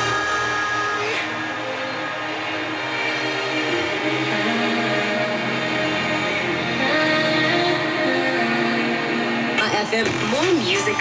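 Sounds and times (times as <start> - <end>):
radio promo music bed: 0.0 - 11.0.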